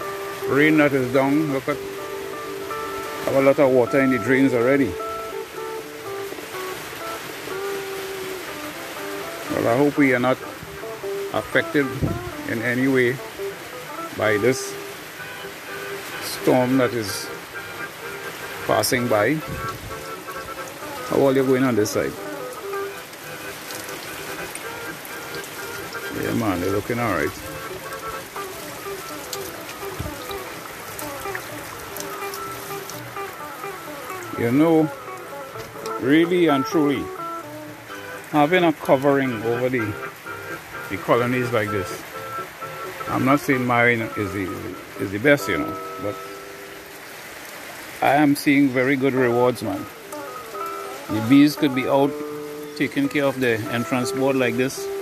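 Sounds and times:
steady rain: 0.0 - 55.0
water running in a drain: 0.0 - 55.0
small drip ticks: 13.2 - 55.0.

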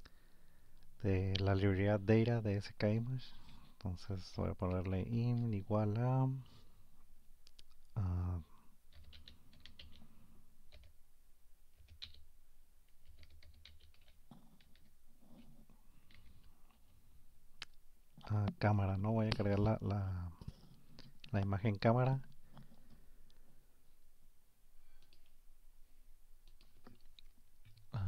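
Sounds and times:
computer keyboard keystrokes: 8.9 - 10.1, 10.7 - 10.9, 11.8 - 12.2, 13.0 - 14.9.

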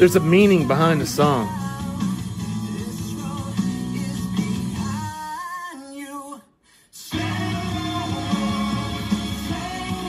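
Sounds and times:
song with singing over guitar: 0.0 - 10.0.

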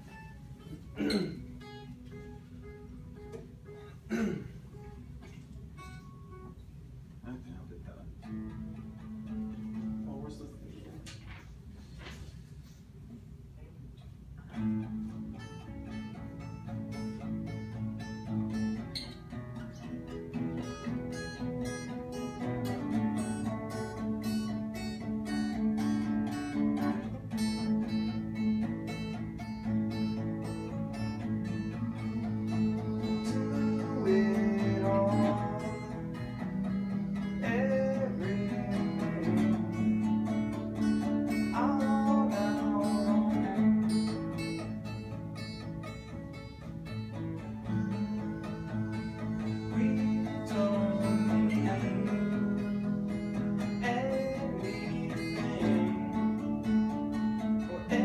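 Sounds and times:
acoustic guitars playing: 0.0 - 58.0.

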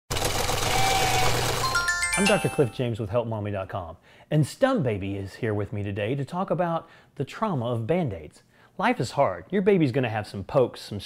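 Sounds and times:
whirring rattle: 0.1 - 1.7
rising bell-like chimes: 1.6 - 2.8.

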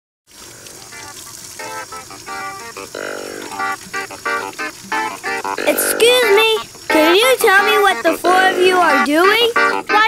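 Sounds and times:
water running from a tap: 0.3 - 10.0.

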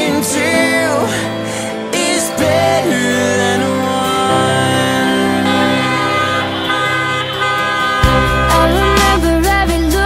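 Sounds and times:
music playing: 0.0 - 10.0
car horns sounding: 4.8 - 9.8.

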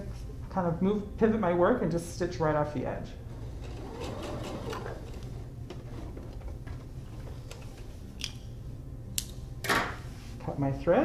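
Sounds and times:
sewing machine running: 3.3 - 6.4.

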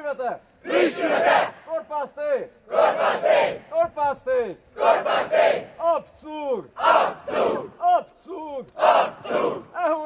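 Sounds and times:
crowd chanting in unison: 0.6 - 1.7, 2.7 - 3.7, 4.8 - 5.8, 6.8 - 7.8, 8.8 - 9.8.

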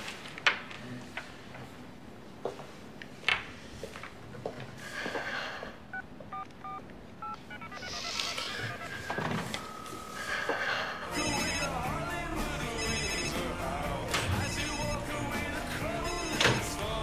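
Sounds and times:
phone keypad beeps: 5.9 - 9.9, 16.0 - 16.8
held dial tone: 5.9 - 10.4, 11.1 - 11.9, 12.6 - 15.2, 15.9 - 17.0
mobile phone ringtone melody: 6.3 - 10.4, 11.1 - 17.0.

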